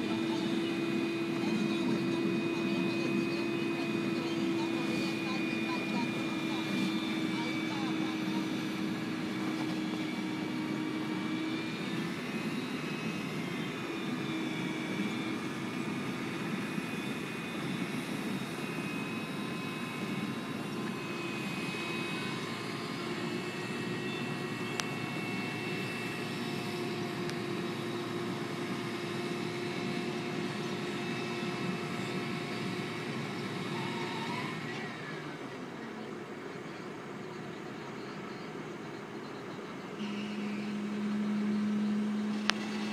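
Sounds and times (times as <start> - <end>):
diesel engine running with whine: 0.0 - 42.9.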